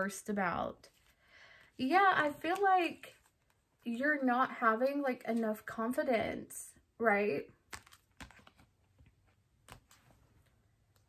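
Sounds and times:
cards clicking and tapping: 7.7s - 10.2s.

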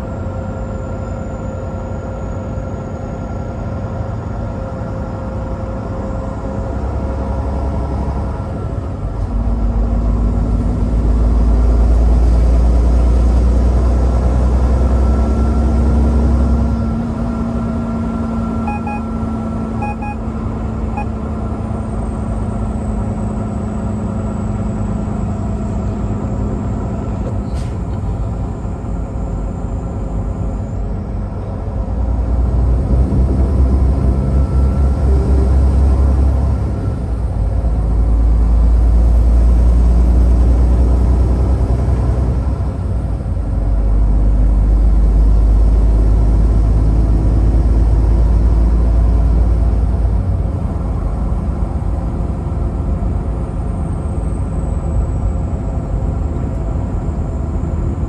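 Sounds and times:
truck engine and road noise: 0.0s - 58.0s
short electronic beeps: 18.6s - 20.3s, 20.9s - 21.1s.

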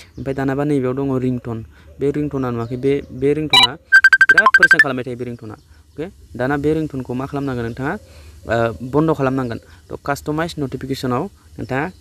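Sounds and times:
electronic chime: 3.6s - 4.9s
high electronic beeps: 3.6s - 4.9s.

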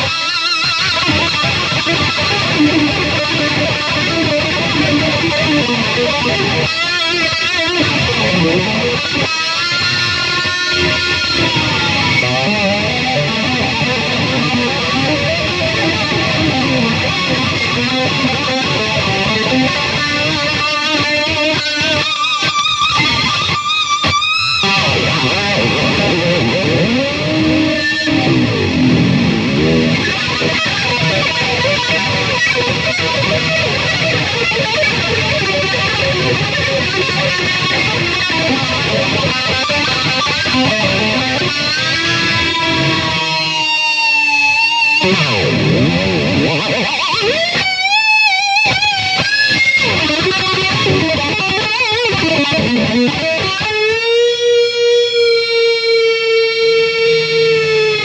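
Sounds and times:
electric guitar with pitch bends: 0.0s - 58.0s.

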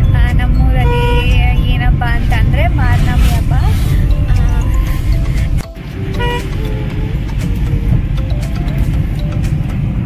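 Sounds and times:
car cabin rumble: 0.0s - 10.0s
woman talking and laughing: 2.2s - 5.6s.

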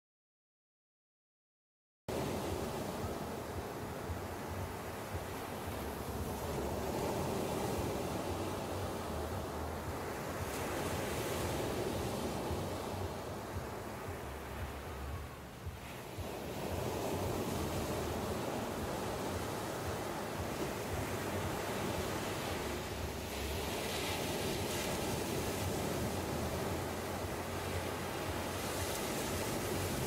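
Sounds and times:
ocean surf breaking on beach: 2.1s - 30.0s.

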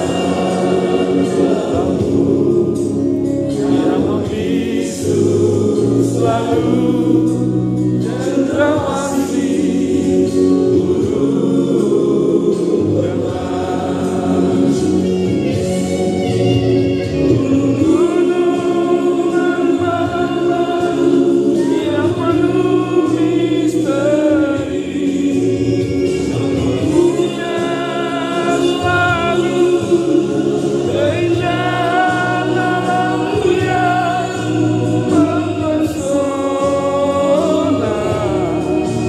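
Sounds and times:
group of voices singing: 0.0s - 39.0s.

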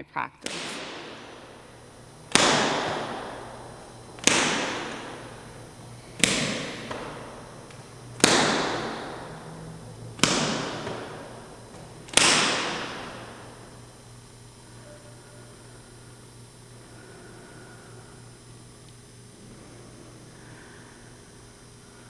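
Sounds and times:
faint low hum: 0.0s - 22.0s
sharp echoing cracks: 0.4s - 14.7s.

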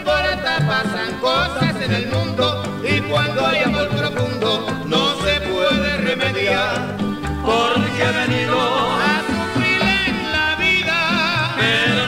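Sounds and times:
latin dance band playing: 0.0s - 12.0s
pulsing bass line: 0.0s - 12.0s.

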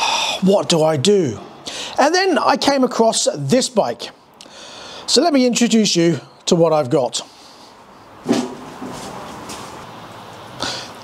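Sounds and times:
rustling footsteps walking: 8.2s - 10.4s
clothing brushing microphone: 8.3s - 9.8s.

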